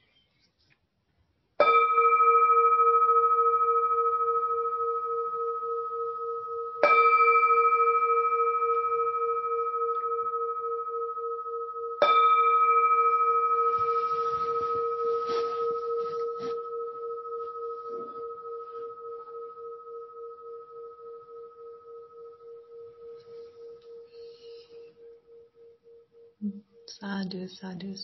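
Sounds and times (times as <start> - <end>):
singing bowl ringing: 1.6 - 26.9.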